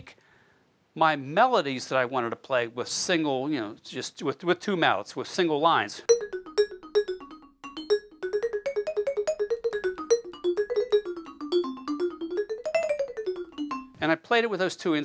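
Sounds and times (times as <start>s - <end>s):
vibraphone melody: 6.1s - 14.1s.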